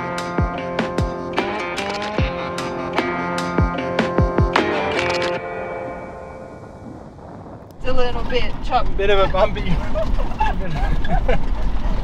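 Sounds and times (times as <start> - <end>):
background music: 0.0 - 7.4
vehicle rumbling over rough track: 6.8 - 12.0.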